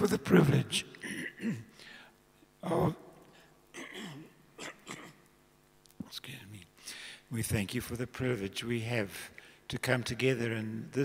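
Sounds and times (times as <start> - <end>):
man speaking softly: 6.0 - 6.7.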